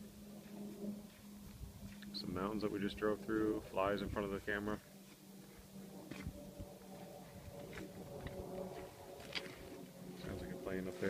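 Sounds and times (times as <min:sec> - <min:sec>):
aircraft drone overhead: 0:00.0 - 0:11.0.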